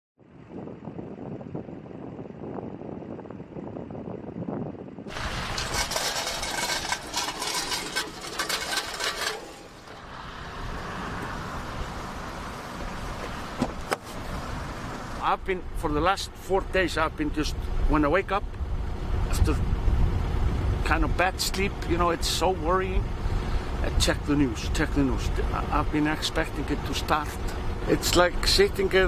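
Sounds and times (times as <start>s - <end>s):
vehicles: 0.2s - 29.0s
wind: 0.2s - 29.0s
crackles: 5.1s - 10.0s.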